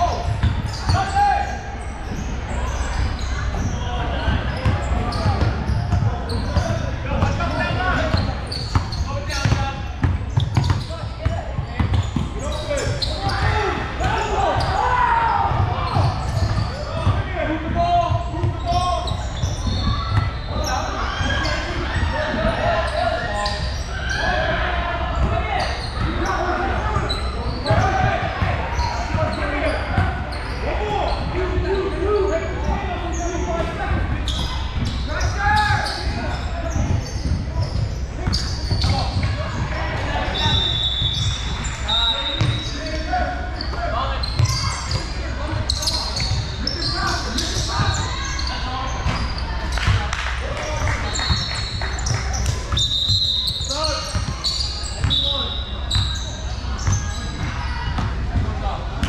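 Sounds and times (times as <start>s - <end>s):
voices in a gym: 0.0s - 59.0s.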